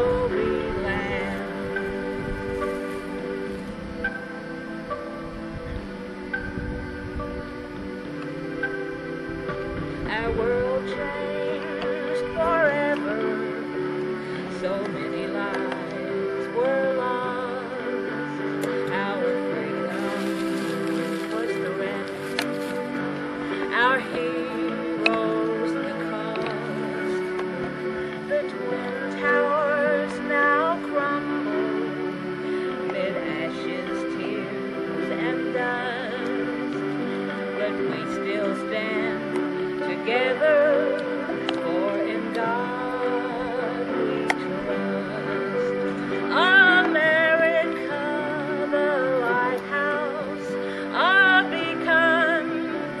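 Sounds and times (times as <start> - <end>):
cassette backing track: 0.0 - 53.0
woman singing slow song: 0.0 - 53.0.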